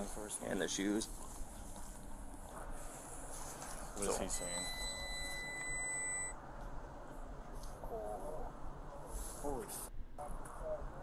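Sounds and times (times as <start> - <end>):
high-pitched electronic beep: 4.3 - 6.4.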